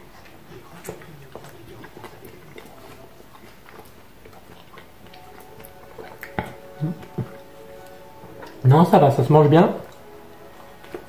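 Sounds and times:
man chewing: 0:00.0 - 0:09.1, 0:09.7 - 0:11.0.

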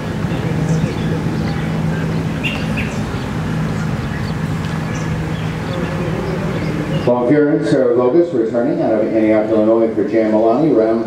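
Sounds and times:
steady low hum: 0:00.0 - 0:11.0
bird chirps: 0:00.2 - 0:07.3.

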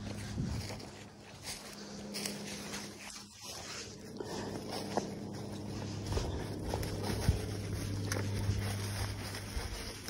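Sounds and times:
footsteps on dry leaves: 0:00.0 - 0:10.0
person breathing heavily: 0:01.4 - 0:10.0.

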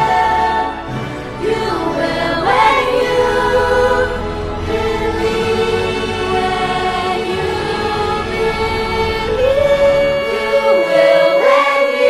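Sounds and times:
choir singing: 0:00.0 - 0:12.0
instrumental backing: 0:00.0 - 0:12.0
women singing a slow ballad: 0:00.0 - 0:12.0.

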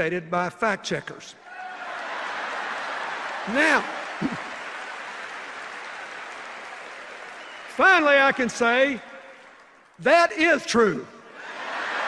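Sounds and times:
crowd applauding: 0:01.6 - 0:10.0.

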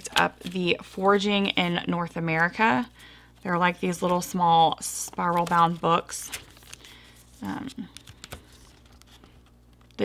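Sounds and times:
booklet pages rustling: 0:00.0 - 0:10.0.

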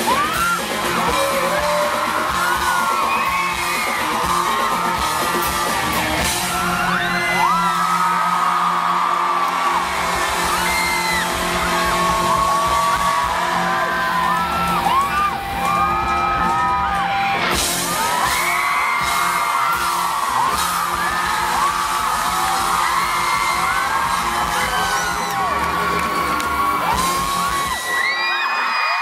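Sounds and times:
live pop-rock band playing: 0:00.0 - 0:28.7
fans screaming and whooping: 0:00.0 - 0:29.0.

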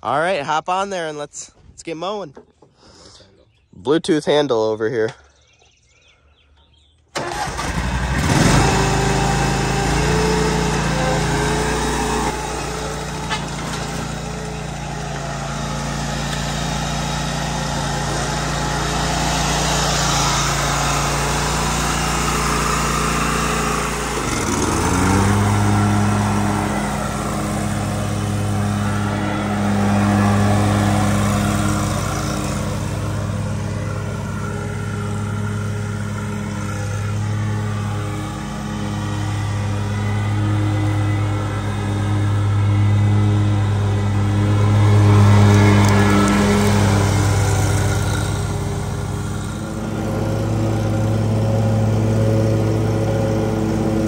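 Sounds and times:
lawn mower engine running: 0:06.6 - 0:54.0.

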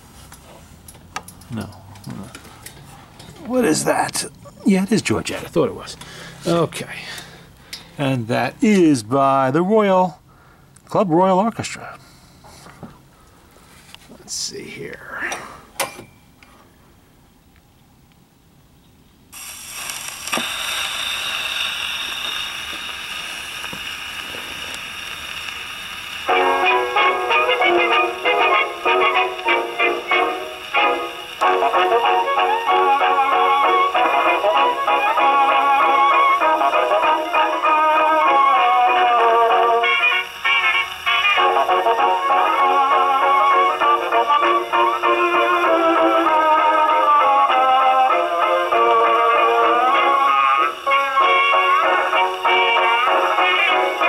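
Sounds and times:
record surface hiss: 0:00.0 - 0:54.0
record needle ticks: 0:22.1 - 0:32.2
orchestral recording playing: 0:26.3 - 0:54.0.

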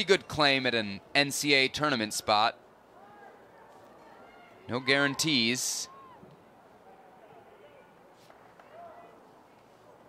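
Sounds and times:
faint stadium ambience: 0:00.0 - 0:10.0.

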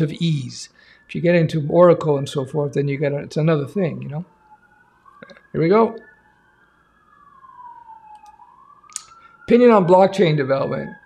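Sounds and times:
faint siren wailing: 0:00.0 - 0:11.0.

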